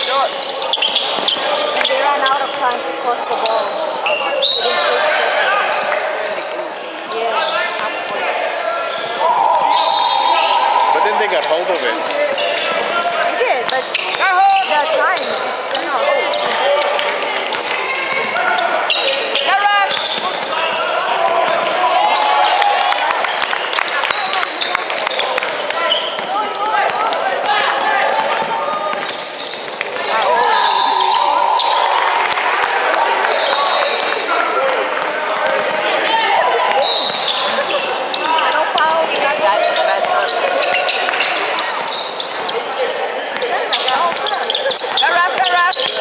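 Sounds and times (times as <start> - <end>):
spectators chatter: 0.0 - 46.0
players shouting: 7.4 - 46.0.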